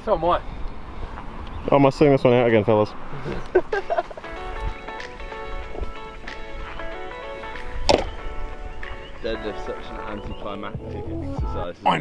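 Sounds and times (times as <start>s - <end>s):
background music: 3.8s - 12.0s
barbell thumping onto grass: 7.8s - 8.2s.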